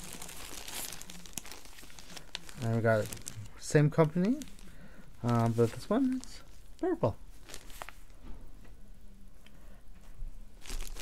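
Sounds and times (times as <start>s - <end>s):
plastic bags crinkling: 0.0s - 8.1s, 10.6s - 11.0s
sharp plastic crackles: 0.0s - 8.1s, 10.6s - 11.0s.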